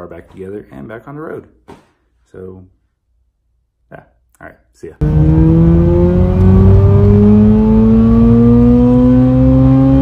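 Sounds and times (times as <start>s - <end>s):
engine revving at full throttle: 5.0s - 10.0s.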